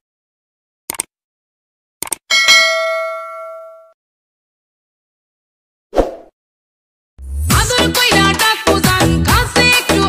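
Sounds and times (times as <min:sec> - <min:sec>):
bell ding: 0:02.3 - 0:04.0.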